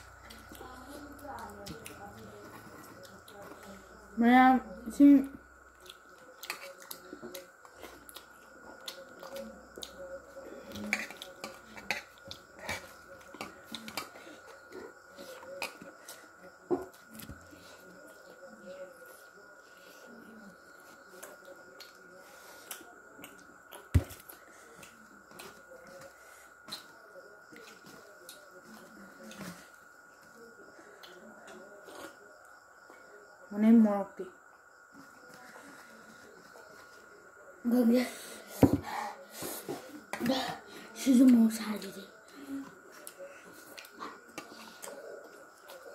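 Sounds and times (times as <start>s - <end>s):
chewing with mouth smacks: 5.7s - 14.2s.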